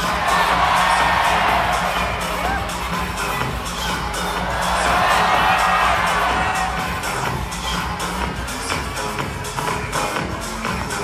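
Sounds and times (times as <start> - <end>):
audience cheering and shouting: 0.0 - 7.8
dance music with heavy beat: 0.0 - 11.0.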